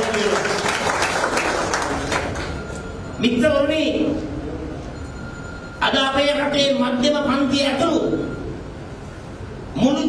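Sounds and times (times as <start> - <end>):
audience applauding: 0.0 - 2.6.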